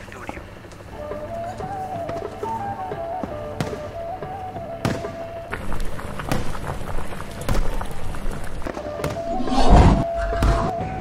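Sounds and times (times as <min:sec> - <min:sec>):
background music with thin melody: 0:00.0 - 0:09.4, 0:10.0 - 0:11.0
firecrackers banging: 0:01.7 - 0:09.3.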